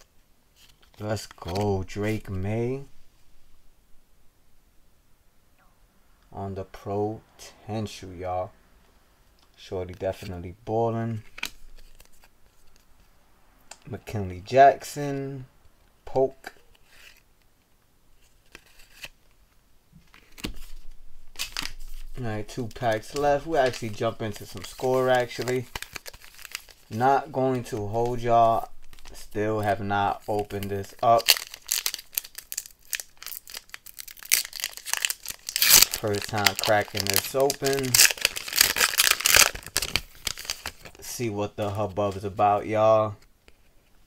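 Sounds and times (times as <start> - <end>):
plastic wrappers crinkling: 20.1 - 41.1.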